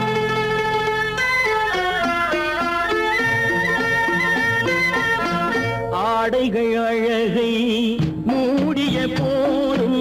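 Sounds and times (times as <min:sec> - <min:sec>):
instrumental film music: 0:00.0 - 0:10.0.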